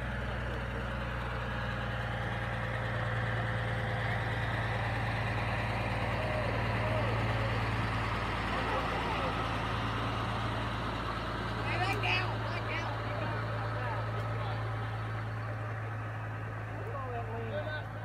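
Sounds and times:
truck diesel engine running: 0.0 - 18.0
voices calling out: 0.0 - 18.0.

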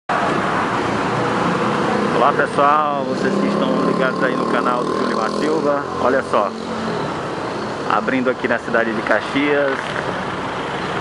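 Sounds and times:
street traffic hum: 0.1 - 11.0.

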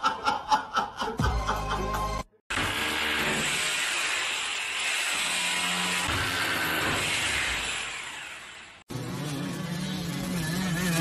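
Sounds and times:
electric drill on glass: 2.5 - 11.0.

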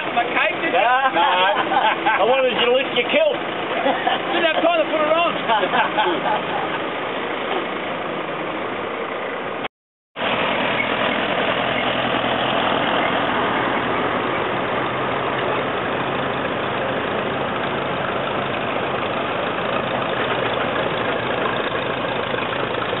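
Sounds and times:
tractor engines running: 0.0 - 23.0.

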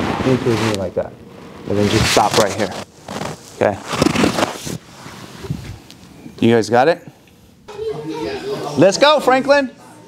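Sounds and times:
fabric rustling: 1.9 - 5.8.

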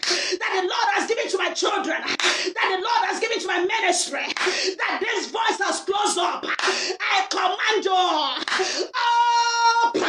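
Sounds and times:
woman praying loudly: 0.0 - 10.0.

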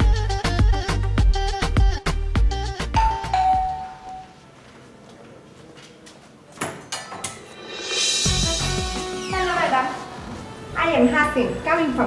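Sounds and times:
two-tone doorbell chime: 3.0 - 4.4.

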